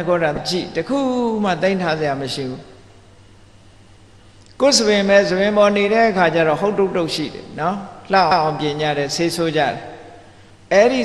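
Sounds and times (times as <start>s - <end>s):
man talking: 0.0s - 2.7s, 4.5s - 10.0s, 10.7s - 11.0s.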